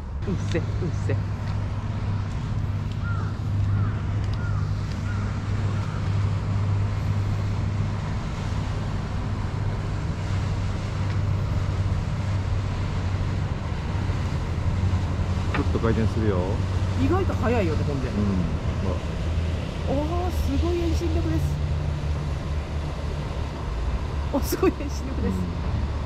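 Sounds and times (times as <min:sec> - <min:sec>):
low engine hum: 0:00.0 - 0:26.0.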